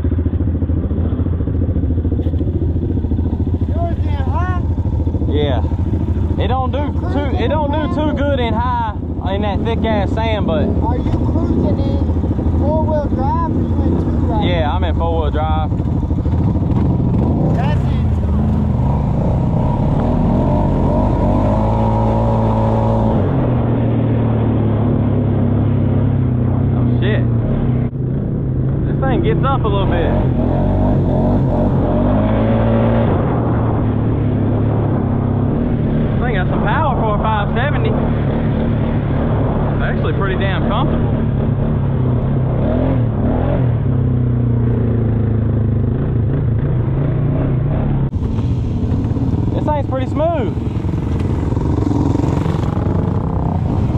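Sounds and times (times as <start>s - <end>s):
quad bike engine running: 0.0s - 53.9s.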